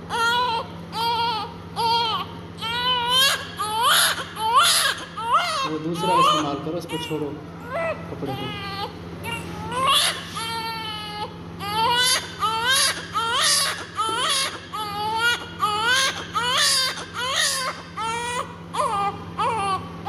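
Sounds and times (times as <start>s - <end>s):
newborn baby crying: 0.1s - 19.9s.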